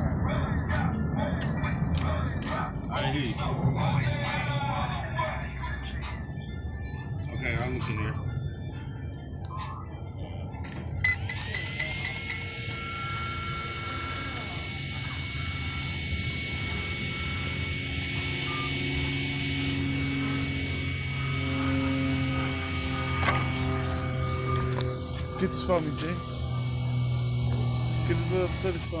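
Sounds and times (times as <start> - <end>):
cooling fan whine: 0.0 - 29.0.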